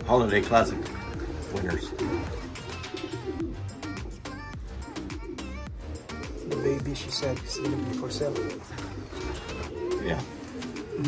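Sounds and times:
pigeons cooing: 0.0s - 11.0s
man saying yeah: 6.5s - 8.7s, 9.8s - 10.4s.

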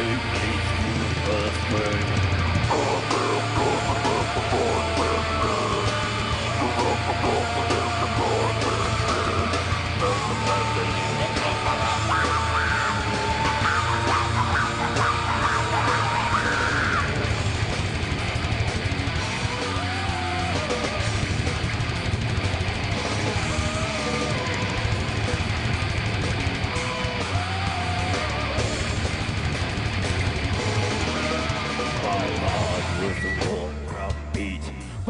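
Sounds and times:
extreme metal band playing live: 0.0s - 35.0s.

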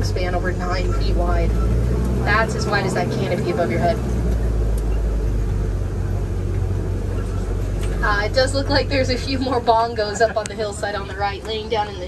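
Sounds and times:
truck engine and road rumble: 0.0s - 12.0s.

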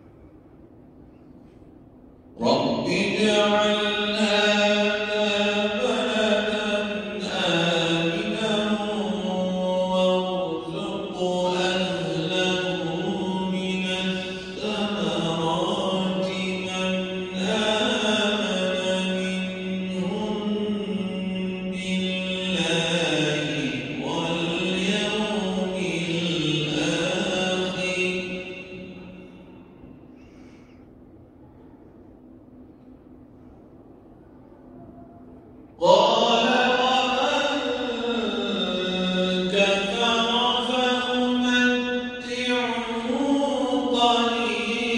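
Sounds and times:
person chanting recitation: 2.4s - 29.9s, 35.3s - 44.9s.

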